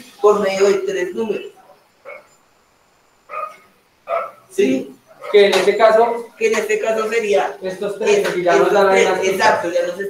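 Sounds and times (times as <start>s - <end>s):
dog barking: 1.5s - 2.4s, 3.3s - 5.6s.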